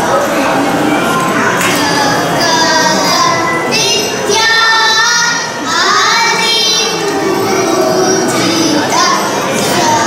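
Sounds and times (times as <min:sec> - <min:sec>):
girls singing in unison: 0:01.5 - 0:10.0.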